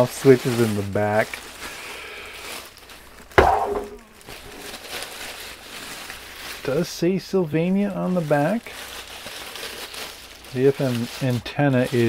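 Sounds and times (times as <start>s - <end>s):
plastic bag rustling: 0.0s - 12.0s
speaker thumping on table: 3.4s - 4.1s.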